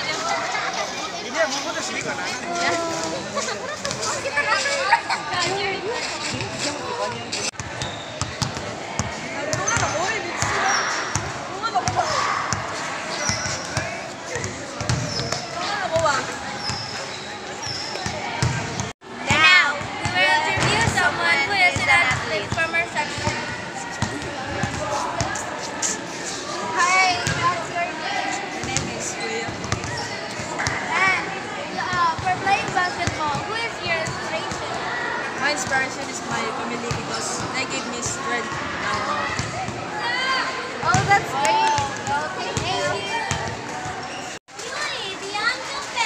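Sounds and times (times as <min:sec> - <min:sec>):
voices talking: 0:00.0 - 0:46.0
basketball bouncing on concrete: 0:14.8 - 0:16.8, 0:18.0 - 0:18.9, 0:40.8 - 0:42.7.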